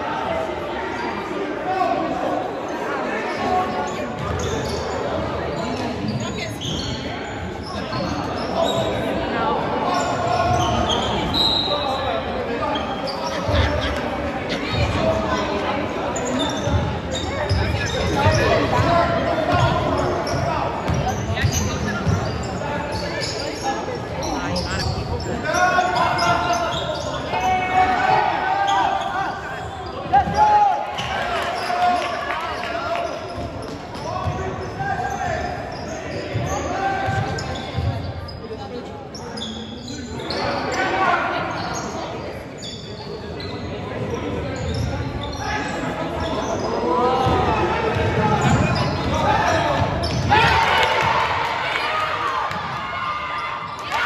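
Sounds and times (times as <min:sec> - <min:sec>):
players and spectators voices: 0:00.0 - 0:54.0.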